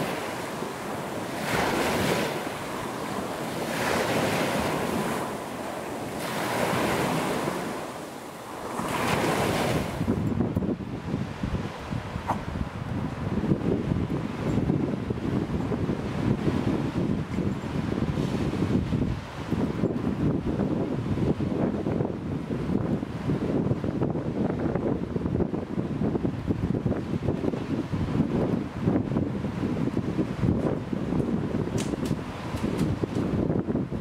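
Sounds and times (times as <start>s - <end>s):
choppy sea waves: 0.0s - 34.0s
gusty wind on microphone: 0.0s - 34.0s.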